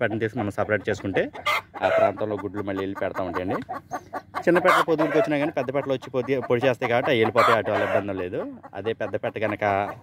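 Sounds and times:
chicken squawk: 0:00.0 - 0:10.0
chickens clucking: 0:00.0 - 0:10.0.

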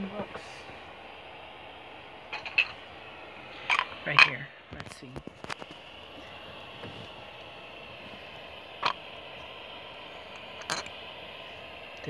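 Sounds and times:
radio static hiss: 0:00.0 - 0:12.0.

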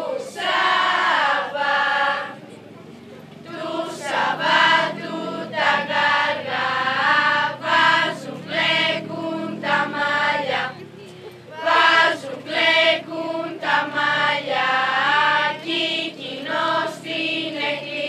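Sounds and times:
girls singing together: 0:00.0 - 0:02.5, 0:03.4 - 0:18.0.

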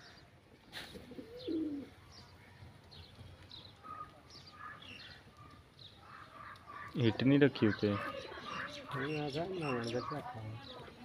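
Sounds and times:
pigeon cooing: 0:00.9 - 0:02.0.

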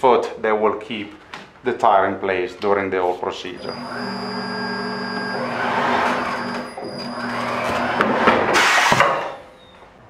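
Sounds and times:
tire changer motor running: 0:03.6 - 0:08.2.

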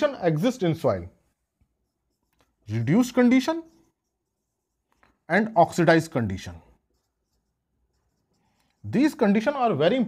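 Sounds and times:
marker pen scratching on whiteboard: 0:00.0 - 0:10.0.

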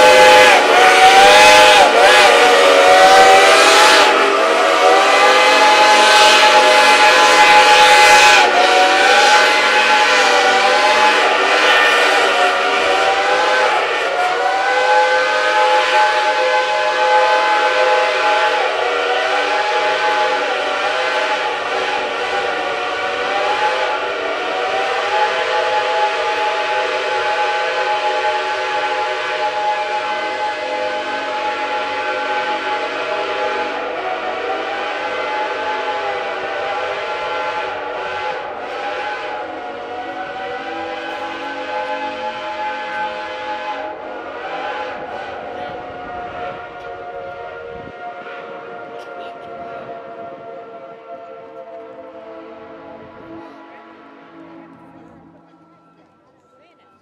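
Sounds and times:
steam locomotive whistles chord: 0:00.0 - 0:57.0.

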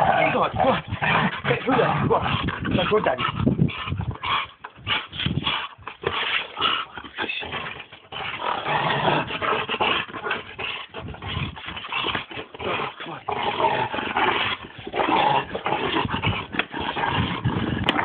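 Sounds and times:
dog growling in play: 0:00.0 - 0:18.0.

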